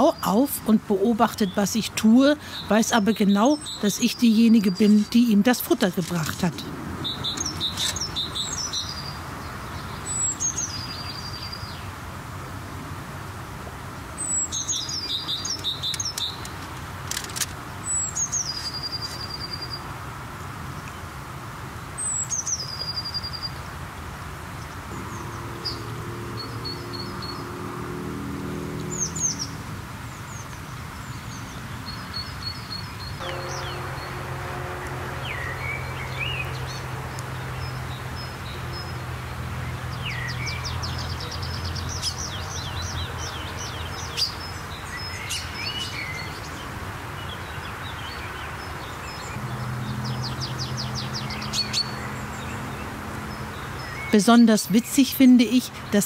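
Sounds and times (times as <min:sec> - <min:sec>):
songbird singing with trills: 0:00.0 - 0:11.9, 0:14.2 - 0:16.6, 0:30.3 - 0:46.6, 0:47.2 - 0:56.0
low steady hum: 0:33.2 - 0:39.8.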